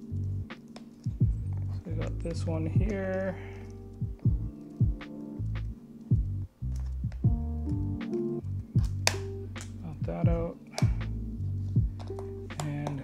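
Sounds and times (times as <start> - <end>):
background music with beat: 0.0 - 13.0
deep bass line: 0.0 - 13.0.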